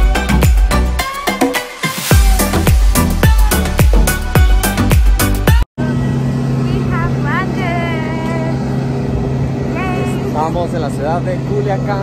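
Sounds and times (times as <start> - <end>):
music with a beat: 0.0 - 5.6.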